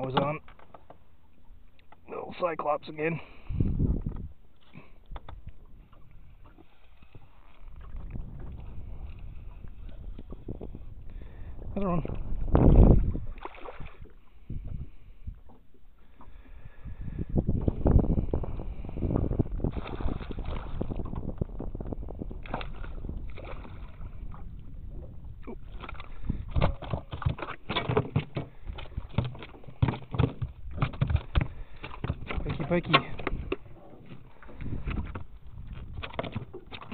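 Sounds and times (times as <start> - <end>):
knocks and thumps in boat: 0.0 - 2.5, 3.5 - 10.9, 11.6 - 36.9
fish thrashing and splashing: 13.1 - 14.0, 25.6 - 35.2.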